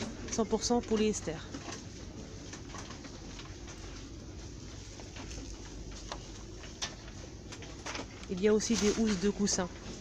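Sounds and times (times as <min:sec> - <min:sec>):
shop background noise: 0:00.0 - 0:10.0.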